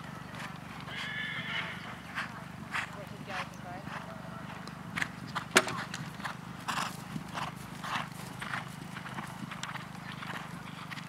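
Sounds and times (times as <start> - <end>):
horse hooves cantering on turf: 0.0 - 11.0.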